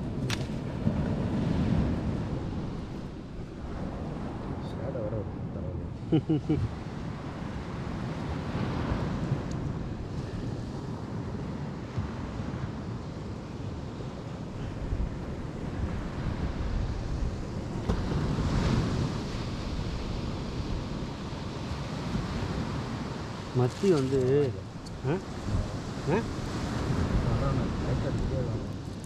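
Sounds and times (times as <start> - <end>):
sea surf breaking on beach: 0.0 - 29.0
wind buffeting microphone: 0.0 - 29.0.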